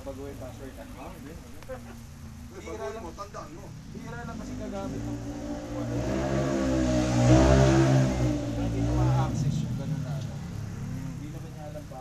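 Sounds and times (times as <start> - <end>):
vehicle engine revving: 3.7 - 12.0.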